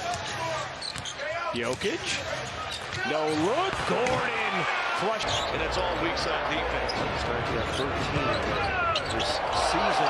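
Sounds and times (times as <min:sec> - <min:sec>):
arena crowd noise: 0:00.0 - 0:10.0
sneaker squeak: 0:00.8 - 0:01.4, 0:05.2 - 0:05.6, 0:06.9 - 0:09.4.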